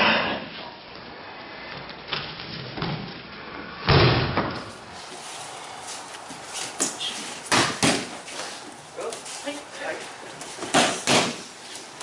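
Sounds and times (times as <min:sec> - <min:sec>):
sharp slap on mat: 0:10.7 - 0:11.4.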